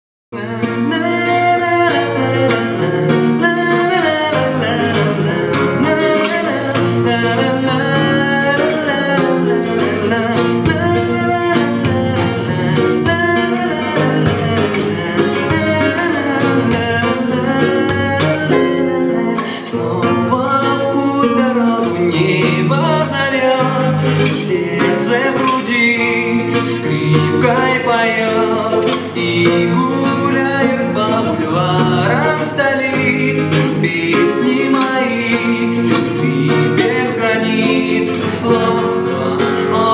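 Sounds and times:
classical guitar strummed: 0.3s - 39.9s
young man singing: 0.3s - 39.9s.

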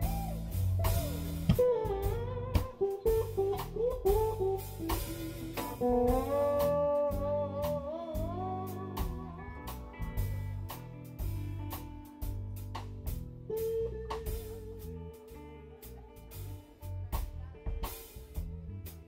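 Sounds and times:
electric guitar solo: 0.0s - 17.0s
drum kit: 0.0s - 19.0s
low bass notes: 0.0s - 19.0s.

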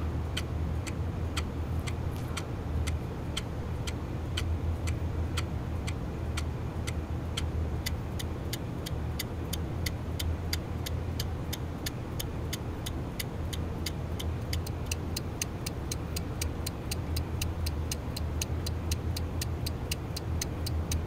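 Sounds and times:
steady low hum: 0.0s - 21.0s
regular ticking: 0.3s - 21.0s.

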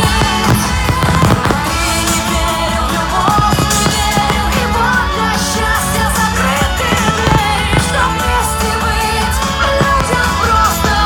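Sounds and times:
fireworks bangs and crackles: 0.0s - 11.0s
loud music: 0.0s - 11.0s.

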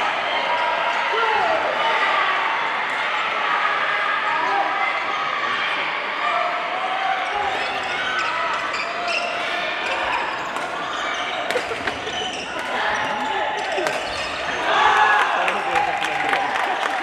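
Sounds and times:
loud shout: 0.0s - 8.5s, 12.6s - 17.0s
shouts and voices echoing: 0.0s - 17.0s.

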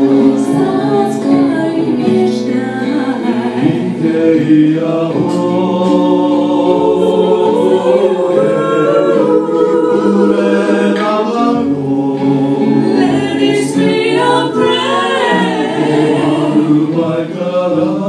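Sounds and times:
women singing in harmony: 0.0s - 18.0s.

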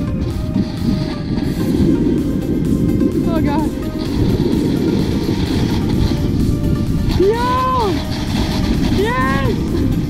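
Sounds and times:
background music: 0.0s - 10.0s
sled scraping down snow: 0.0s - 10.0s.

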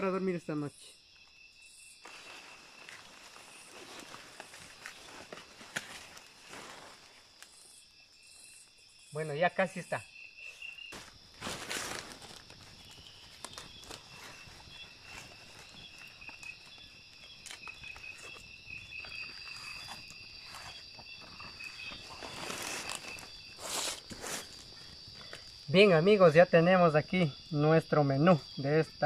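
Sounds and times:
insects trilling: 0.0s - 29.0s
leaves and paper rustling: 2.0s - 7.6s, 10.4s - 25.7s
campfire crackling: 10.9s - 20.6s.

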